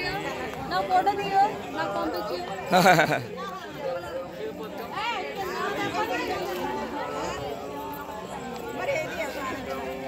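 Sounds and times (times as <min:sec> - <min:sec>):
small crowd talking: 0:00.0 - 0:10.0.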